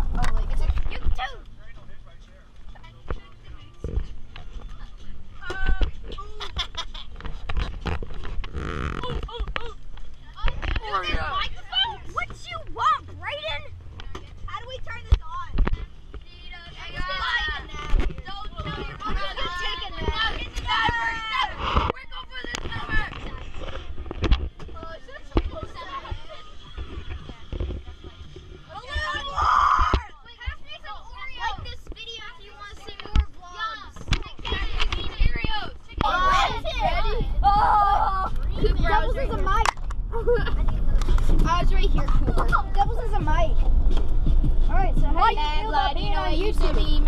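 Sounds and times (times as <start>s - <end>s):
children talking and shouting: 0.0s - 47.0s
low rumble: 34.4s - 47.0s
sharp knocks and thumps: 40.7s - 45.2s.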